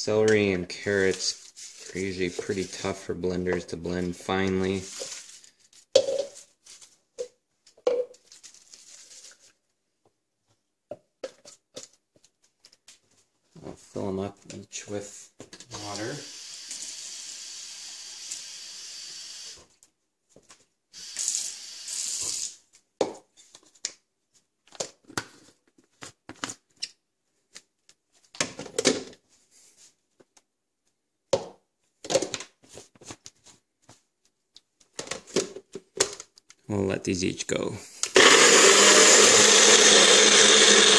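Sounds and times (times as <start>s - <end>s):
plastic cups clicking and knocking: 6.0s - 6.4s
water pouring into plastic cups: 15.8s - 19.1s.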